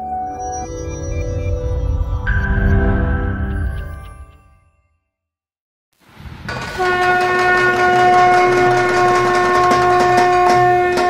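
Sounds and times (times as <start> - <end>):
long steady horn-like note: 6.8 - 11.0.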